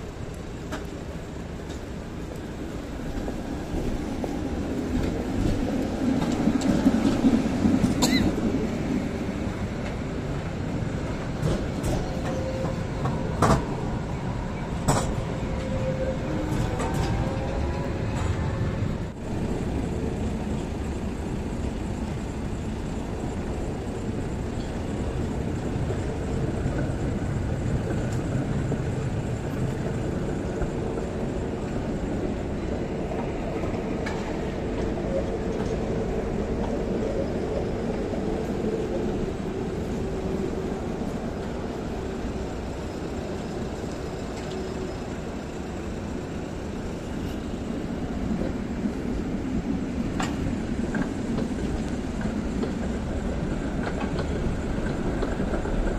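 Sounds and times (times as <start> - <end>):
trams rolling on track: 0.0 - 55.9.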